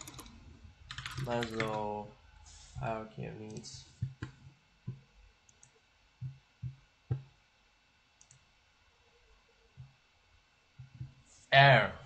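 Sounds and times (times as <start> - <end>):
keyboard and mouse clicks: 0.0 - 1.9.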